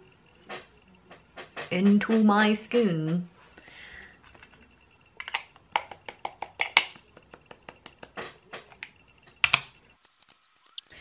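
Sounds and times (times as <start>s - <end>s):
makeup cases clicking and tapping: 5.2s - 9.7s.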